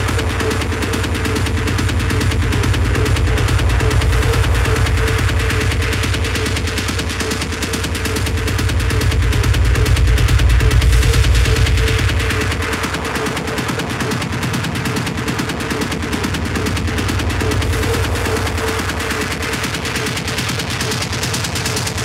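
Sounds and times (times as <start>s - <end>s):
rapid noisy percussion hits: 0.0s - 22.0s
techno music: 0.0s - 22.0s.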